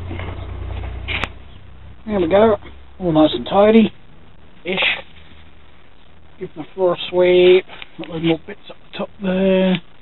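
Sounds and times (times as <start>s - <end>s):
low rumble of handling: 0.0s - 8.9s.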